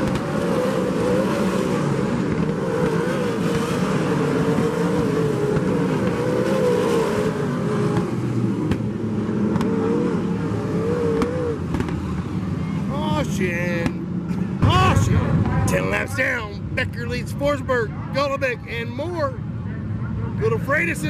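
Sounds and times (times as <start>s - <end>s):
race car engines at high revs: 0.0s - 21.0s.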